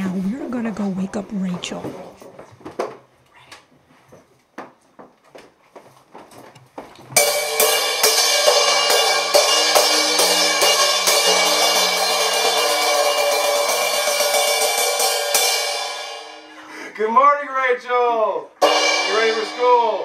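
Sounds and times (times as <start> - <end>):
cymbal struck with drumstick: 7.2 - 16.6, 18.6 - 20.0.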